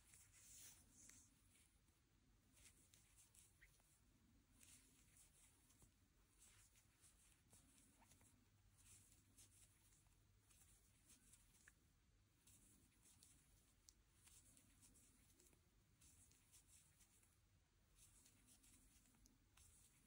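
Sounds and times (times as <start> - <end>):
crochet hook rustling yarn: 0.0 - 1.8, 2.4 - 20.0.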